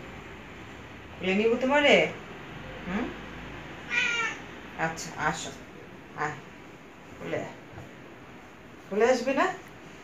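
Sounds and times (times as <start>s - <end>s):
cat meowing: 3.9s - 4.5s.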